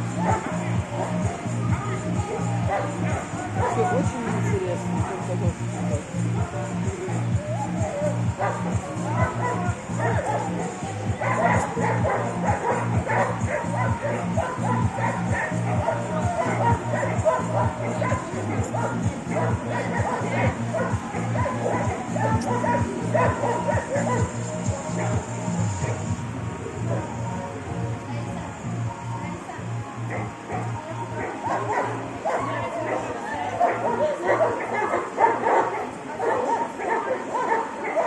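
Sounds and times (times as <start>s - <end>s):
dogs barking and yipping: 0.0s - 6.3s, 7.5s - 27.2s, 30.0s - 38.0s
loud music with low beat: 0.0s - 28.0s.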